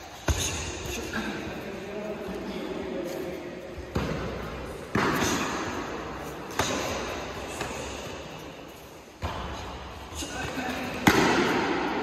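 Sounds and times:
sharp sparring impacts echoing: 0:00.0 - 0:12.0.

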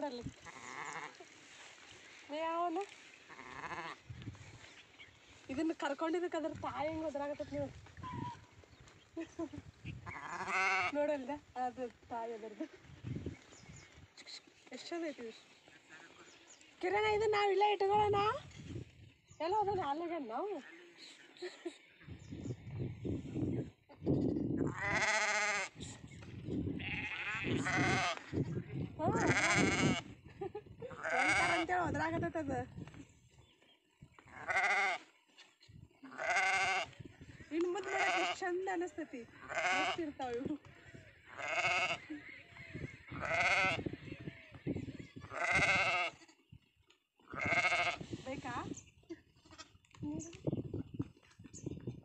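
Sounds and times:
sheep bleating: 0:00.4 - 0:01.2, 0:03.3 - 0:04.0, 0:10.1 - 0:11.0, 0:24.2 - 0:25.8, 0:26.8 - 0:28.2, 0:29.1 - 0:30.0, 0:30.9 - 0:31.7, 0:34.3 - 0:35.1, 0:36.0 - 0:37.0, 0:37.8 - 0:38.4, 0:39.4 - 0:40.0, 0:41.2 - 0:44.0, 0:45.2 - 0:46.4, 0:47.3 - 0:48.0.

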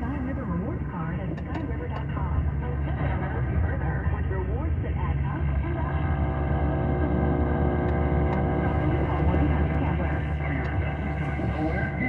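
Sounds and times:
voice on radio: 0:00.0 - 0:06.2, 0:08.4 - 0:12.0
car road and engine rumble: 0:00.0 - 0:12.0.

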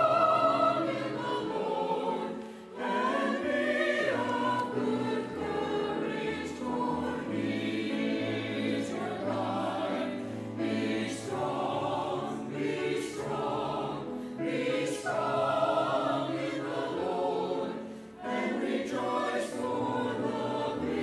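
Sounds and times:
church choir singing: 0:00.0 - 0:21.0.

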